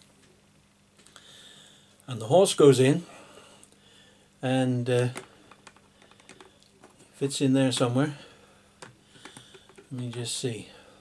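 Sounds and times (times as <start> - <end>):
puzzle pieces clicking and tapping: 8.8 - 10.2.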